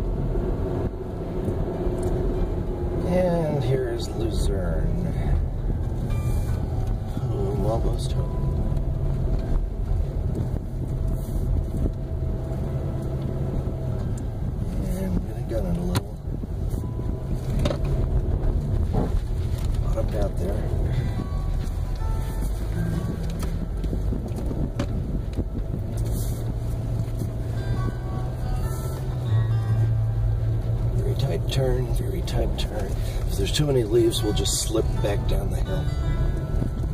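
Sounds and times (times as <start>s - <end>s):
car engine drone inside cabin: 0.0s - 36.9s.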